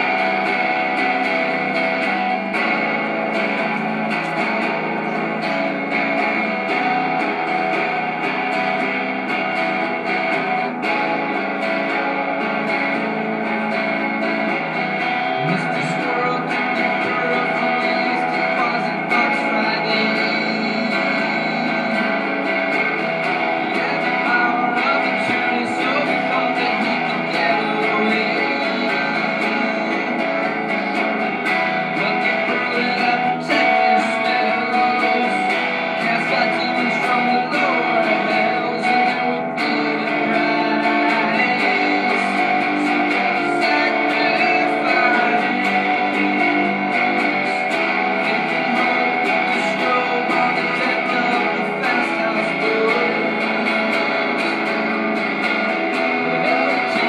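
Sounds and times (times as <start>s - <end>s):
electric guitar sustained notes: 0.0s - 57.0s.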